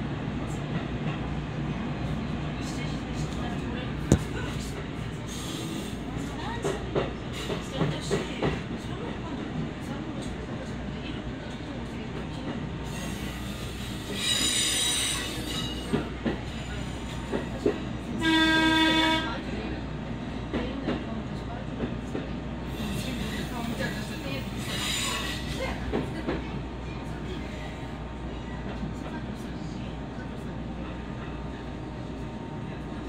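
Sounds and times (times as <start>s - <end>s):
railcar low rumble: 0.0s - 33.0s
train horn: 18.2s - 19.5s.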